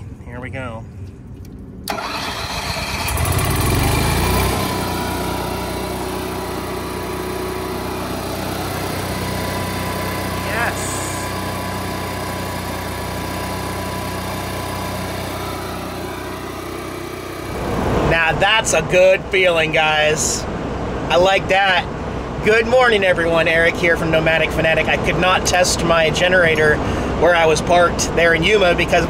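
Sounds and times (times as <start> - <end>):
generator cranking and running: 1.4 - 17.8.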